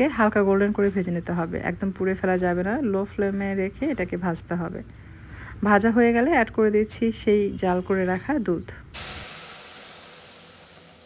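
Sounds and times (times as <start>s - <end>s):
milk sizzling in hot pan: 9.0s - 11.0s.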